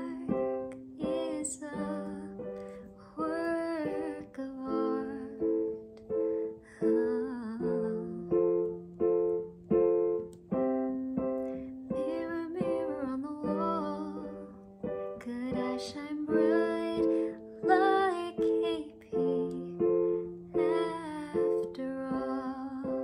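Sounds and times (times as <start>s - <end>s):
woman singing: 0.0s - 8.8s, 11.8s - 23.0s
electronic keyboard piano chords: 0.0s - 23.0s.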